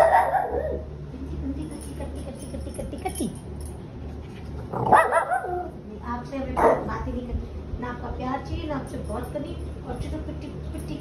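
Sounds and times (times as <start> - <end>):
dog barking: 0.0 - 0.8, 4.8 - 5.7, 6.6 - 6.9.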